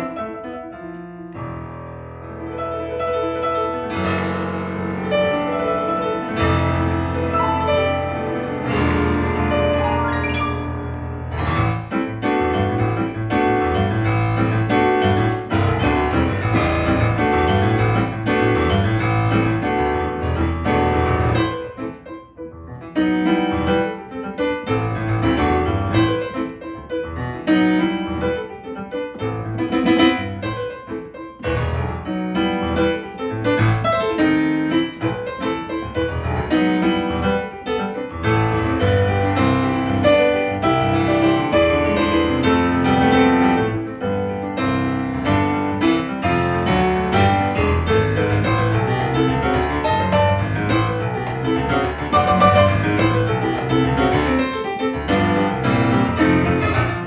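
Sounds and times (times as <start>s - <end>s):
solo jazz piano: 0.0s - 57.0s.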